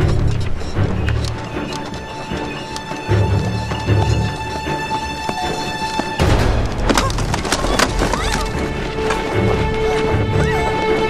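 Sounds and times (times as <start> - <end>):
music score: 0.0 - 11.0
wooden knocks and clatter: 5.9 - 10.1.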